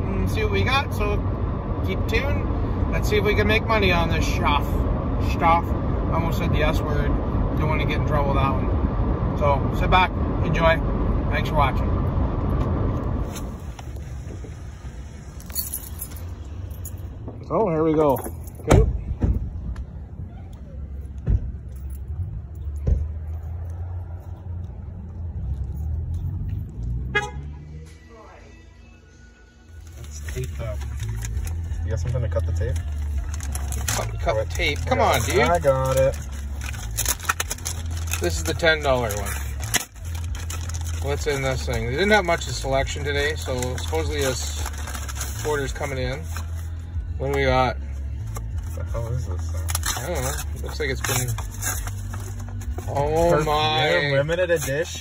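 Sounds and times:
car road noise inside cabin: 0:00.0 - 0:55.0
plastic mailer tearing and crinkling: 0:29.9 - 0:31.7, 0:32.6 - 0:42.6, 0:43.2 - 0:46.7, 0:49.6 - 0:53.4.

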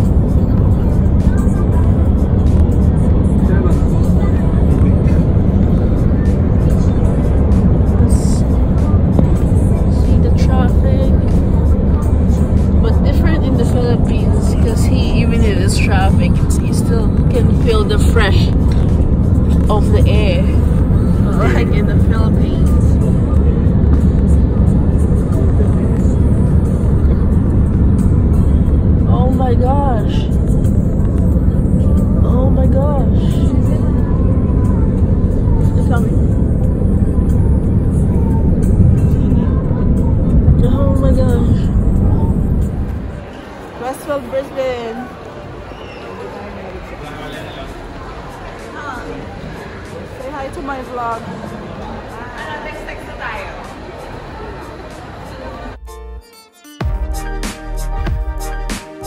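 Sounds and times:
music with singing voice: 0:00.0 - 0:43.3, 0:55.5 - 0:59.0
road and engine rumble: 0:00.0 - 0:56.2.

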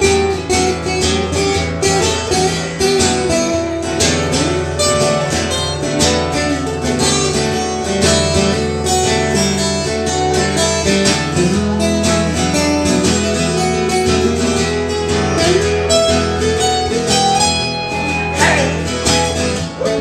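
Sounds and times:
guitar strumming rhythm: 0:00.0 - 0:20.0
lead guitar picking: 0:00.0 - 0:20.0.

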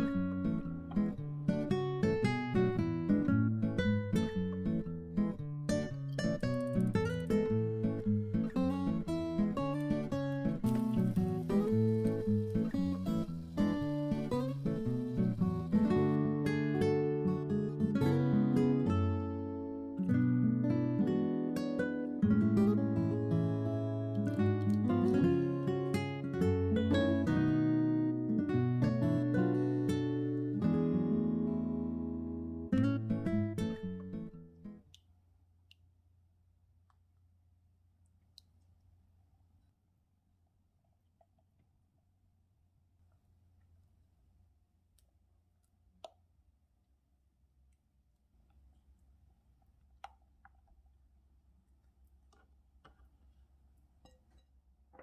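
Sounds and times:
acoustic guitar tune: 0:00.0 - 0:34.9.

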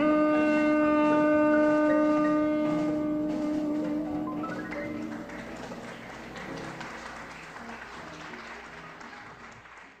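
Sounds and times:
saxophone holding a long note: 0:00.0 - 0:05.6.

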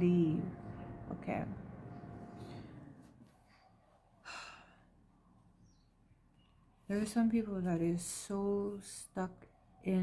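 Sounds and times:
woman breathing: 0:04.2 - 0:05.0.

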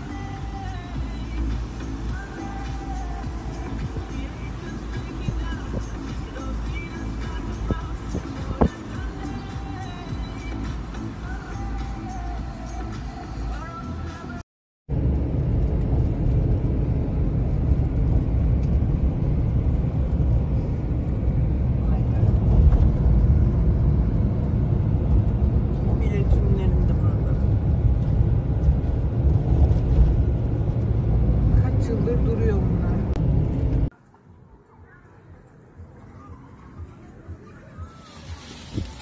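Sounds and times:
car interior driving rumble: 0:00.0 - 0:12.8, 0:14.9 - 0:33.9
faint voices: 0:34.0 - 0:39.0.

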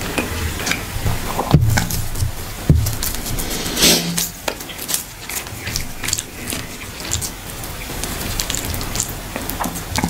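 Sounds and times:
fingers squishing wet food: 0:04.4 - 0:10.0.

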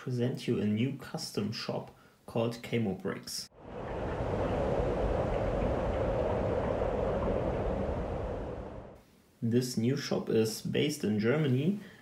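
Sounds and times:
steady rumbling noise: 0:03.6 - 0:09.0.

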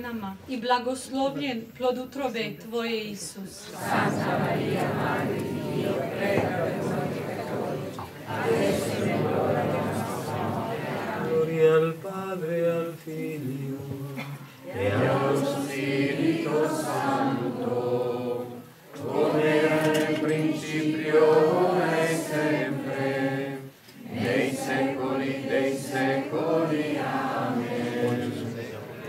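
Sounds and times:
crowd praying in unison: 0:03.6 - 0:29.0.

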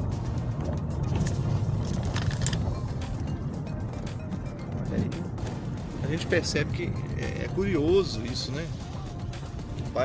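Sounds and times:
engine and road rumble: 0:00.0 - 0:10.0.

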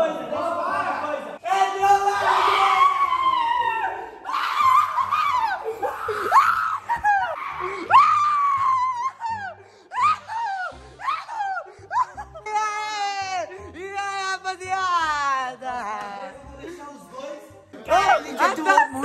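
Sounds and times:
people screaming and shouting: 0:01.4 - 0:12.3.

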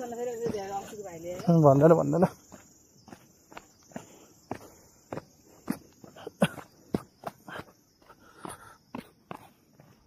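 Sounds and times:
footsteps on stone steps: 0:00.0 - 0:10.0.

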